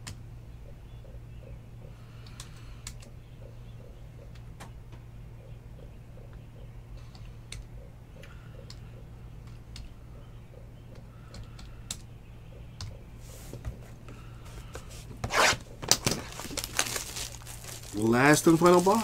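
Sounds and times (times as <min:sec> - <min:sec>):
steady low hum: 0:00.0 - 0:19.0
plastic wrap tearing and crinkling: 0:15.3 - 0:19.0.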